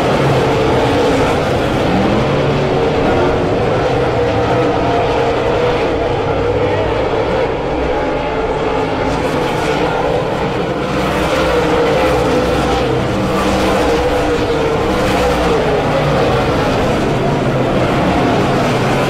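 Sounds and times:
race car engines droning: 0:00.0 - 0:19.0.

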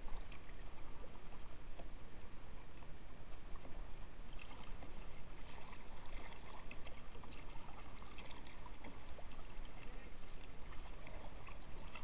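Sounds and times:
paddle splashing in water: 0:04.3 - 0:12.0.

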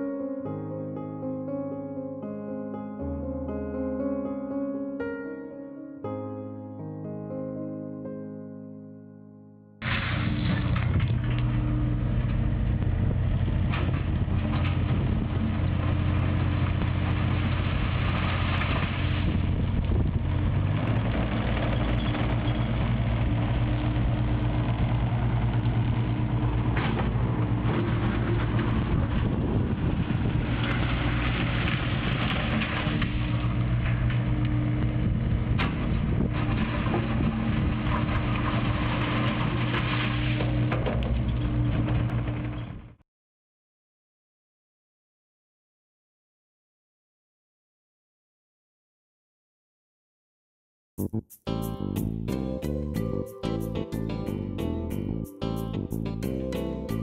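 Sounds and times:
excavator diesel engines running: 0:09.8 - 0:42.6.

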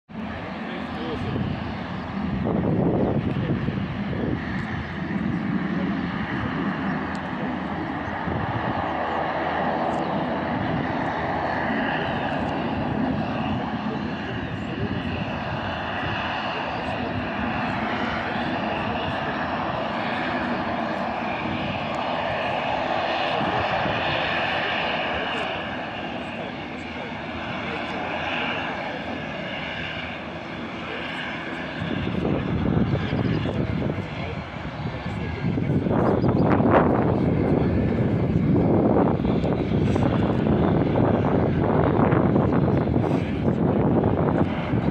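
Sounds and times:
deep rumble of plane: 0:00.1 - 0:44.9
distant jet engines whining: 0:00.1 - 0:44.9.

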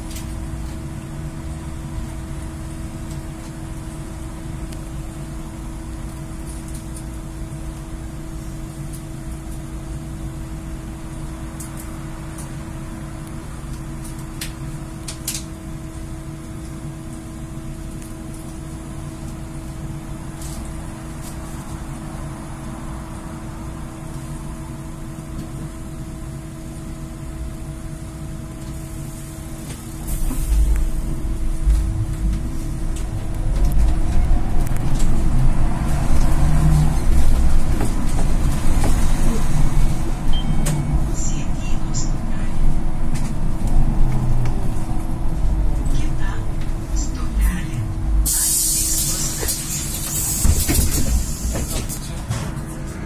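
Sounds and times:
rumble of moving vehicle: 0:00.0 - 0:53.0
trolleybus electric hum: 0:00.0 - 0:53.0.

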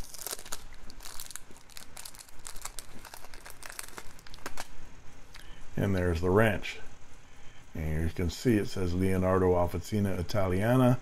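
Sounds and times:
paper packaging crinkling: 0:00.0 - 0:04.8.

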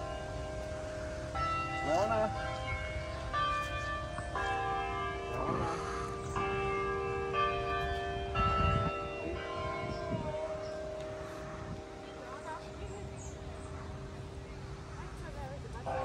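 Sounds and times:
tower bells ringing: 0:00.0 - 0:16.0.

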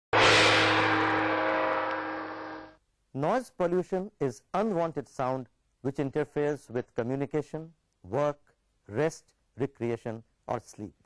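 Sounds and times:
ringing gong-like hit: 0:00.1 - 0:02.8.

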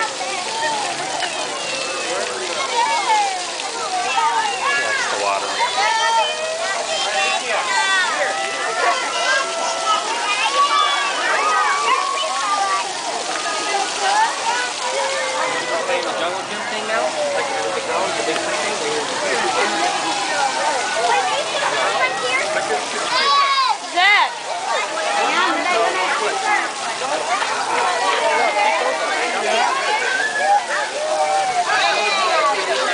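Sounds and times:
children shouting and chattering: 0:00.0 - 0:32.9
water jets hissing and splashing: 0:00.0 - 0:32.9.

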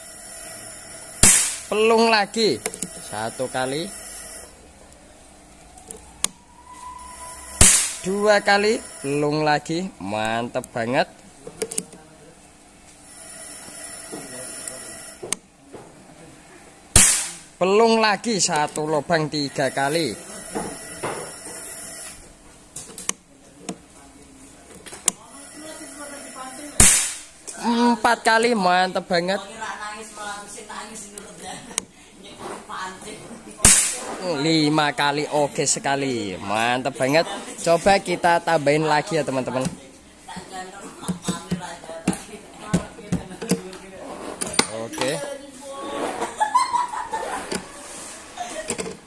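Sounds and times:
indistinct voices talking: 0:00.0 - 0:11.1, 0:17.4 - 0:22.3, 0:25.2 - 0:28.7
air rifle shot: 0:01.2 - 0:01.7, 0:07.6 - 0:08.0, 0:17.0 - 0:17.4, 0:26.8 - 0:27.3, 0:33.6 - 0:34.1.

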